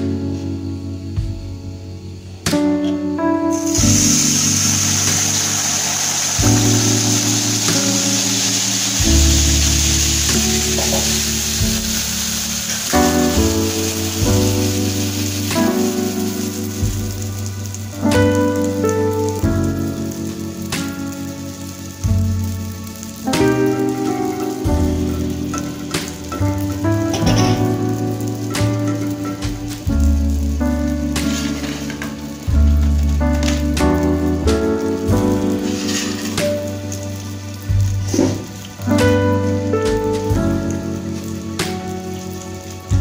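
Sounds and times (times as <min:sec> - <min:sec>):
background music of sustained chords: 0:00.0 - 0:43.0
batter sizzling in hot oil: 0:03.5 - 0:43.0.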